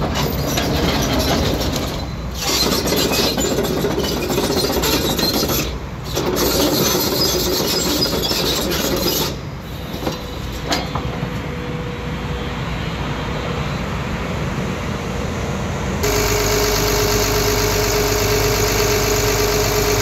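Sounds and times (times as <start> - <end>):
engine whine: 8.2 - 20.0
diesel engine idling: 16.0 - 20.0.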